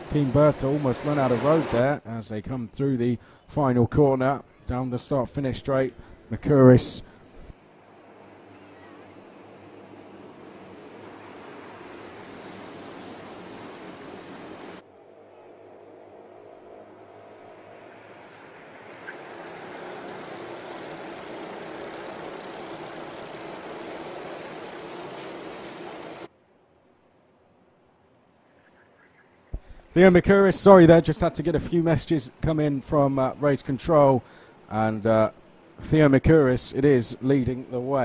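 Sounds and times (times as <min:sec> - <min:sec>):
racing kart engines droning: 0:00.0 - 0:01.8, 0:06.0 - 0:26.3.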